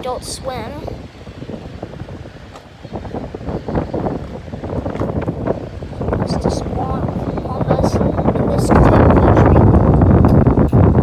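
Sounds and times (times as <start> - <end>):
low wind rumble on microphone: 0.0 - 11.0.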